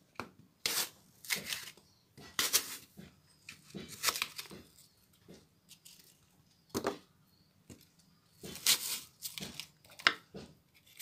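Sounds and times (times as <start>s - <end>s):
knife slicing an apple: 0.6s - 4.6s, 8.4s - 11.0s.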